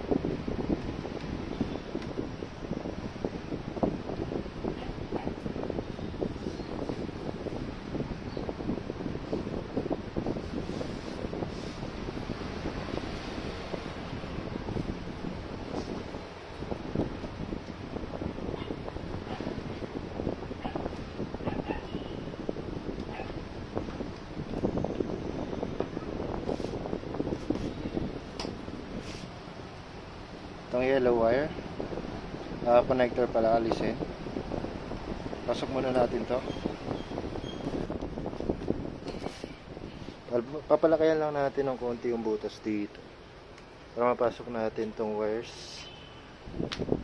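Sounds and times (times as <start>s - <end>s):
wind buffeting microphone: 0.0s - 47.0s.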